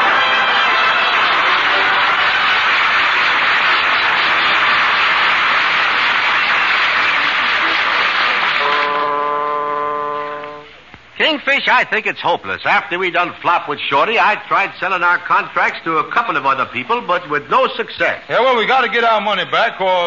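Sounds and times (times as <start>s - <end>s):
audience laughter and applause: 0.0s - 9.0s
held musical chord: 8.7s - 10.7s.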